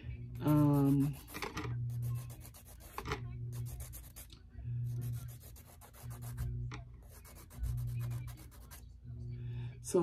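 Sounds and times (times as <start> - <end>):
nail file scratching: 0.4 - 8.8.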